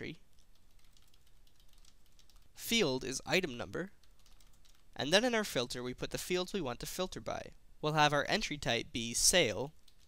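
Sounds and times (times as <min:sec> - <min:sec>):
typing on a keyboard: 0:00.3 - 0:02.5, 0:04.0 - 0:04.9.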